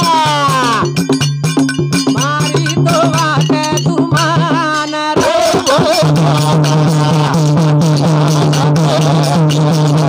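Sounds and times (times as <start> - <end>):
man singing: 0.0 - 1.0, 2.1 - 10.0
hand drum beat: 0.0 - 10.0
small hand cymbals: 0.0 - 10.0.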